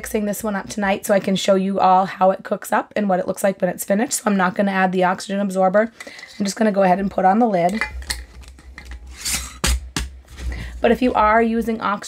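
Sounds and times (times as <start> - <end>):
metal scraping on glass threads: 7.7 - 9.6.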